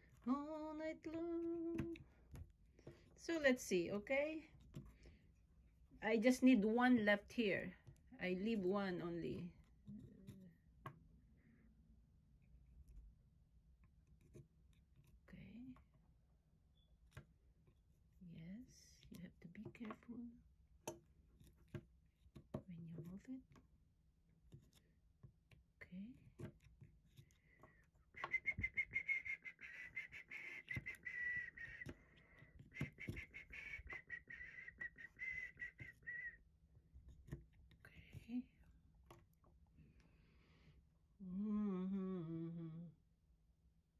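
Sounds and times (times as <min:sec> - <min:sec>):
high thin whistling tone: 0:28.1 - 0:32.0, 0:32.7 - 0:36.4.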